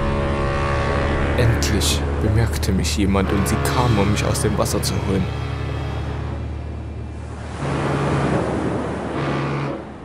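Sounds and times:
low steady drone: 0:00.0 - 0:10.0
rushing surf: 0:03.3 - 0:10.0.

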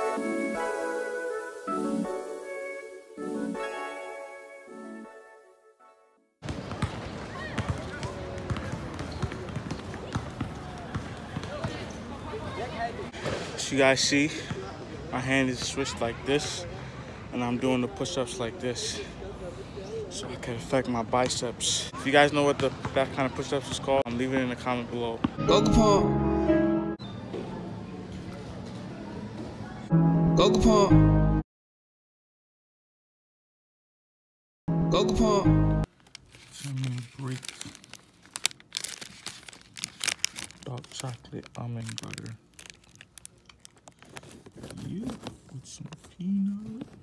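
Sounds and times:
music: 0:00.0 - 0:06.4, 0:25.4 - 0:27.0, 0:29.9 - 0:31.4, 0:34.7 - 0:35.9
basketballs bouncing on court: 0:06.4 - 0:12.2, 0:22.5 - 0:23.0
background voices: 0:44.9 - 0:47.0.

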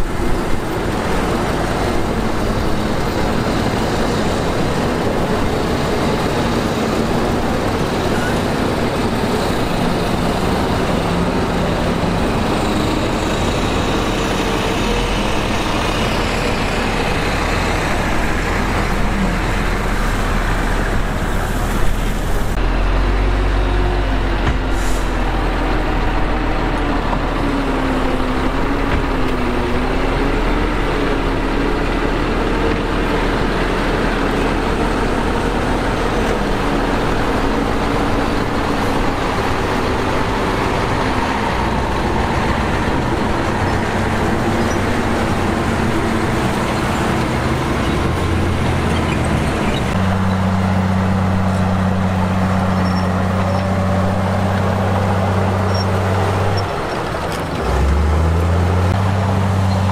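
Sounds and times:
bulldozer diesel engine under load: 0:00.0 - 0:59.9.

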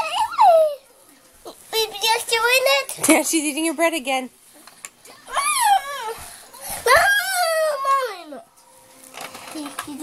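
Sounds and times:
child whining cry: 0:00.0 - 0:00.9, 0:05.1 - 0:08.4.

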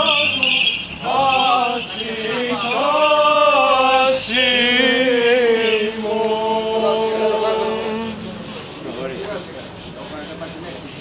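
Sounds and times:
men chanting a hymn: 0:00.0 - 0:09.5
crickets chirping: 0:00.0 - 0:11.0
indistinct voices: 0:00.0 - 0:11.0.

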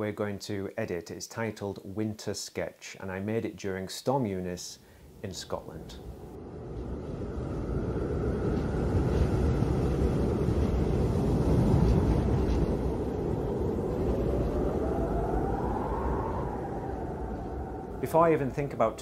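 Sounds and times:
storm wind gusting: 0:05.6 - 0:19.0
faint rising whistle: 0:06.4 - 0:19.0.

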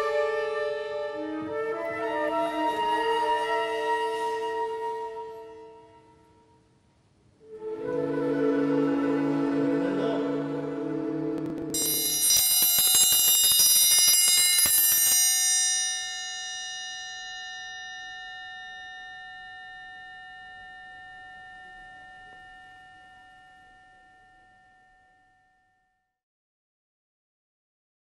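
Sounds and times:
metal chimes ringing: 0:11.8 - 0:24.0.

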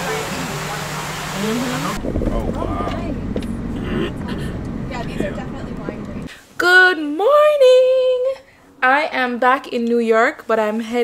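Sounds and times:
vehicle engine and road rumble: 0:00.0 - 0:06.3.

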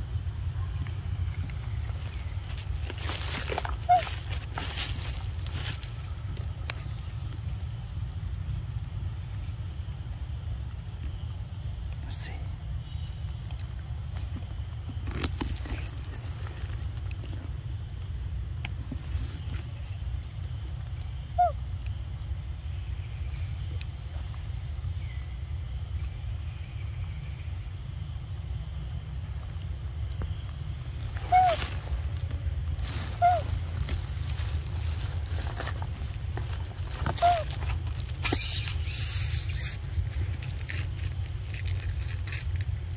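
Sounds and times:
steady low rumble: 0:00.0 - 0:42.9
high chirp-like calls: 0:03.8 - 0:04.3, 0:31.2 - 0:31.9, 0:32.8 - 0:33.8, 0:37.1 - 0:37.6, 0:38.2 - 0:39.9.

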